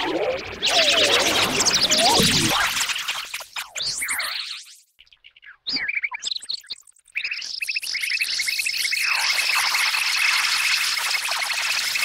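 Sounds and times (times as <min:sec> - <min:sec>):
gliding synth sweeps: 0:00.0 - 0:03.1.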